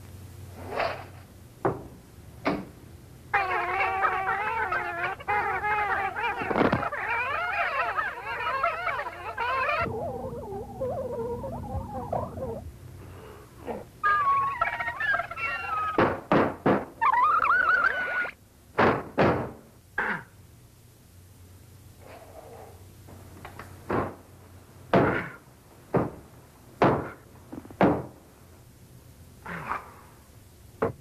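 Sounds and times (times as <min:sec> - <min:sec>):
warbling high-pitched tone: 0:09.6 - 0:12.7.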